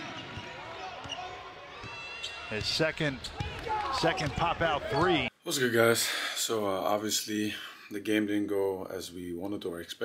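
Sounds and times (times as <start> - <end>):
low arena background: 0.0 - 10.0.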